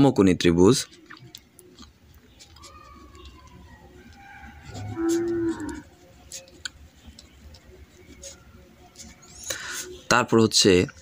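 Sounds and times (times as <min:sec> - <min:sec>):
pen writing on paper: 0:04.5 - 0:09.5.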